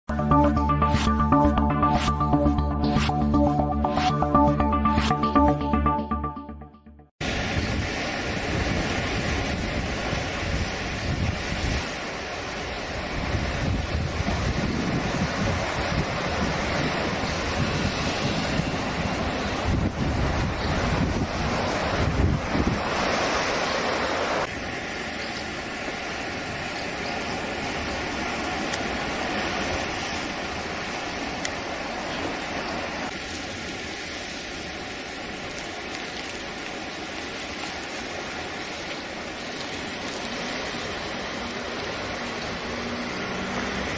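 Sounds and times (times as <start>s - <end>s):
sea surf: 7.2s - 43.9s
wind rushing over microphone: 7.3s - 12.0s, 12.8s - 24.6s.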